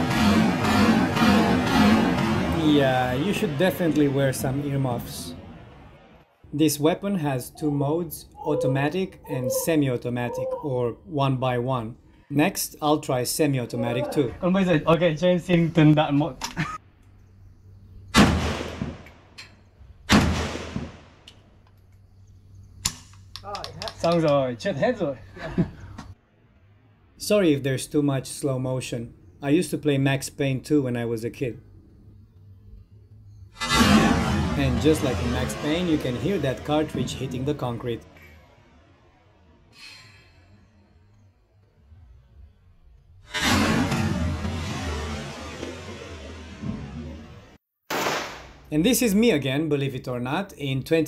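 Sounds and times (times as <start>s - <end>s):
rifle shot: 18.1s - 19.2s, 20.1s - 21.2s, 33.6s - 36.2s, 43.3s - 47.2s, 47.9s - 48.7s
slowed-down gunshot: 18.2s - 19.3s, 20.1s - 21.2s, 33.6s - 37.0s, 43.3s - 48.7s.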